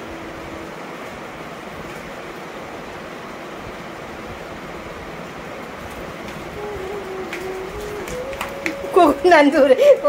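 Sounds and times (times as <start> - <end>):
steady hiss and rumble: 0.0 - 10.0.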